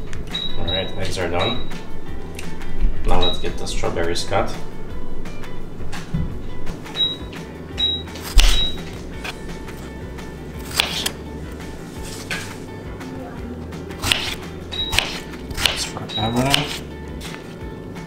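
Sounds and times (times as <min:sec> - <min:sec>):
background music: 0:00.0 - 0:18.0
knife slicing strawberries: 0:08.2 - 0:09.8, 0:10.6 - 0:11.2, 0:14.0 - 0:17.5.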